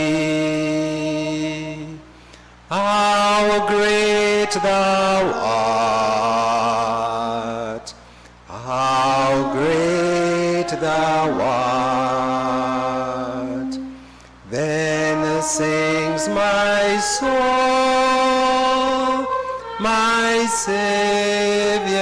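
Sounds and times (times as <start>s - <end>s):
slow hymn singing with vibrato: 0.0s - 22.0s.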